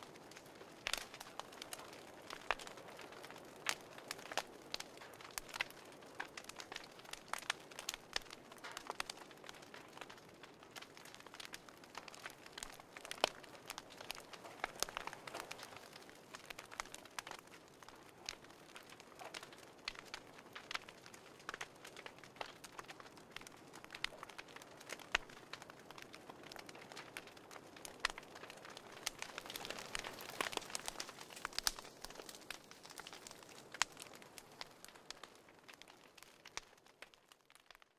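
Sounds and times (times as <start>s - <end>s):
fire crackling: 0.0s - 37.9s.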